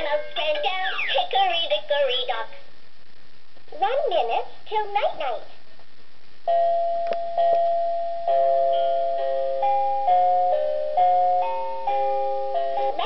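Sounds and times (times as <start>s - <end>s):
toy playing electronic lullaby: 6.5s - 13.0s.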